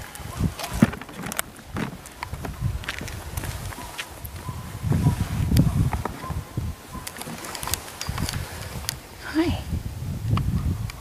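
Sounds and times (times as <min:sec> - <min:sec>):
low rumbling handling noise: 0:00.0 - 0:11.0
footsteps on gravel: 0:00.6 - 0:06.5.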